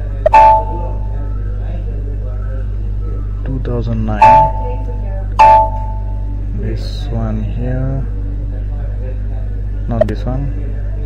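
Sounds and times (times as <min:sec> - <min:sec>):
steady low hum: 0:00.0 - 0:11.0
computer alert chime: 0:00.3 - 0:01.2, 0:04.2 - 0:06.3.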